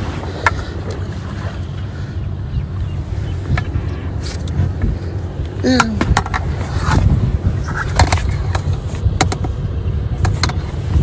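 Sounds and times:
boat motor rumbling: 0:00.0 - 0:11.0.

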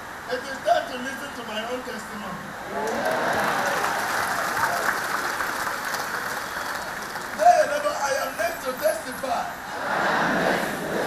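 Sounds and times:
crowd applauding: 0:02.7 - 0:08.4.

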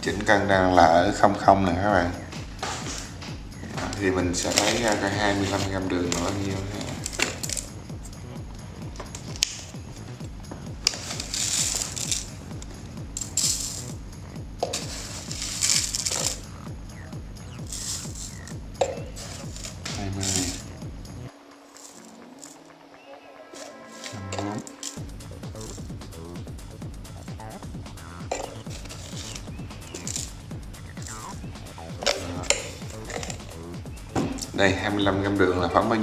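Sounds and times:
background music: 0:00.0 - 0:36.0
spoon scooping sugar: 0:03.9 - 0:07.7, 0:10.8 - 0:12.4, 0:13.2 - 0:14.0, 0:14.6 - 0:16.5, 0:17.6 - 0:20.7, 0:21.6 - 0:22.6, 0:23.5 - 0:25.0, 0:28.3 - 0:30.3, 0:32.1 - 0:33.6
sugar grains sliding: 0:03.9 - 0:07.7, 0:10.8 - 0:14.0, 0:14.6 - 0:16.5, 0:17.6 - 0:20.8, 0:21.6 - 0:22.7, 0:23.5 - 0:25.0, 0:28.4 - 0:30.4
metal clinking on glass: 0:17.7 - 0:20.6, 0:28.3 - 0:30.3.

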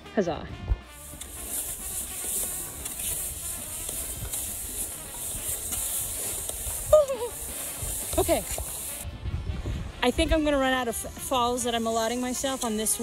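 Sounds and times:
faint music: 0:00.0 - 0:13.0
skis gliding over snow: 0:00.9 - 0:09.0, 0:10.3 - 0:13.0.

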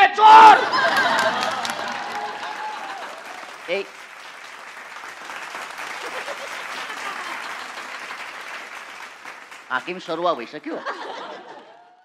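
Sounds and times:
man shouting: 0:00.0 - 0:00.7
audience applauding: 0:00.4 - 0:11.8.

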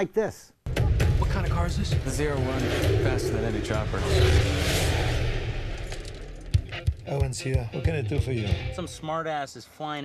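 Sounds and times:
sharp bangs: 0:00.7 - 0:07.1
speeding car rushing: 0:01.9 - 0:06.6.

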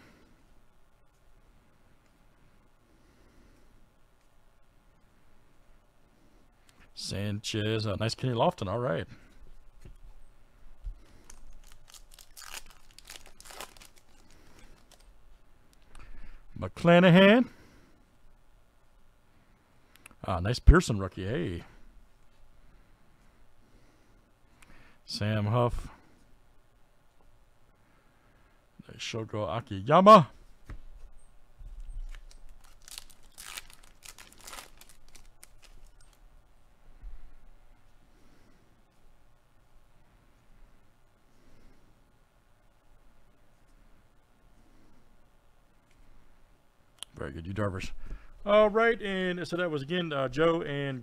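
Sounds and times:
wrapper tearing and crinkling: 0:11.2 - 0:15.1, 0:32.0 - 0:36.2.

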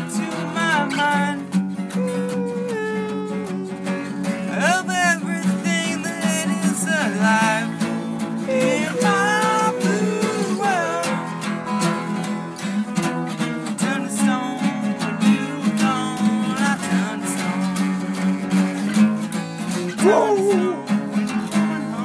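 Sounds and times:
acoustic guitars strumming: 0:00.0 - 0:22.0.

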